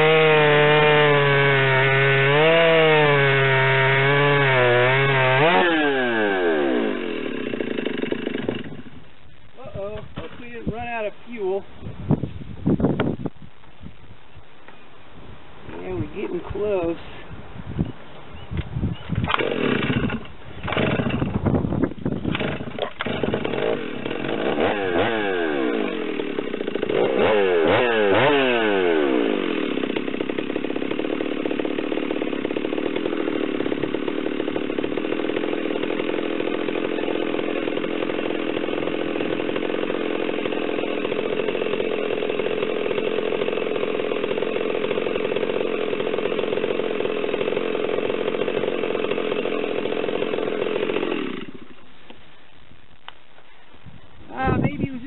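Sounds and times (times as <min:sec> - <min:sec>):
chainsaw revving and cutting log: 0:00.0 - 0:09.1, 0:19.2 - 0:52.2.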